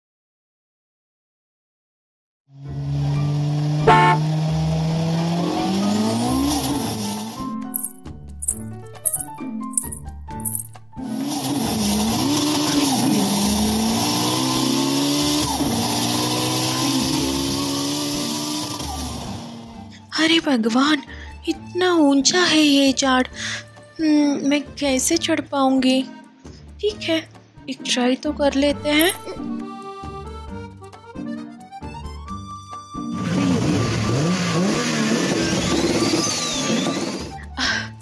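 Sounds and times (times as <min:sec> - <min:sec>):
car engine revving: 0:02.7 - 0:07.9, 0:11.0 - 0:19.7, 0:33.1 - 0:37.3.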